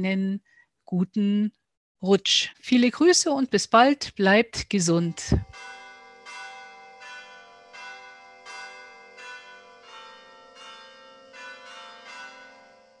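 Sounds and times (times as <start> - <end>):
bells ringing: 5.1 - 13.0.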